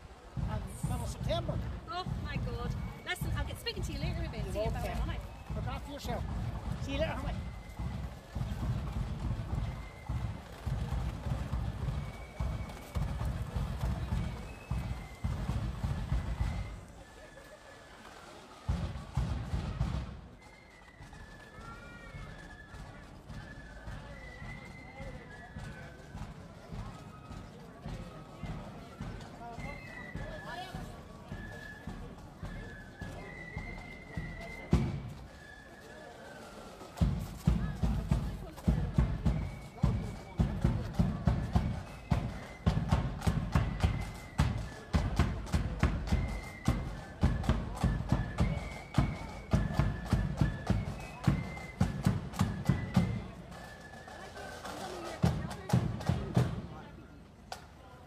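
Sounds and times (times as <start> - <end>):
loud drum beats: 0.0 - 17.0, 18.6 - 20.4, 34.6 - 35.4, 37.0 - 53.6, 54.6 - 56.8
marching band melody: 0.0 - 57.6.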